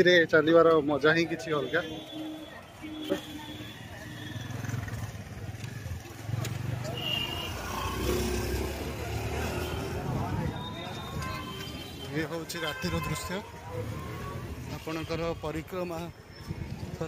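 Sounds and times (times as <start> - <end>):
voices of people walking: 0.0 - 17.0
passing motorbikes rumbling: 2.4 - 12.1.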